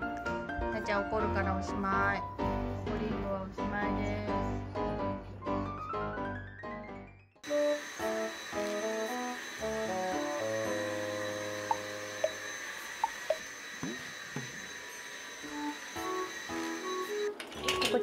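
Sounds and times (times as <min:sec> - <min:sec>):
background music: 0:00.0 - 0:12.4
vacuum cleaner high-pitched whine: 0:07.4 - 0:17.9.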